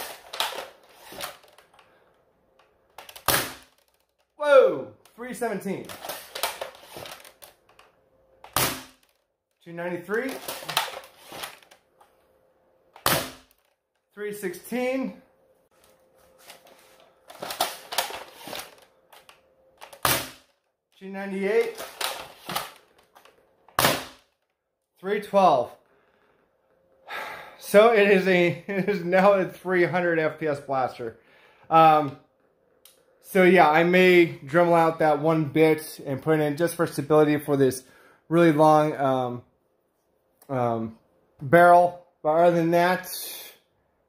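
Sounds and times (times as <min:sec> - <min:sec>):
dart blaster shots: 0:03.2 - 0:03.7, 0:08.5 - 0:09.0, 0:13.0 - 0:13.5.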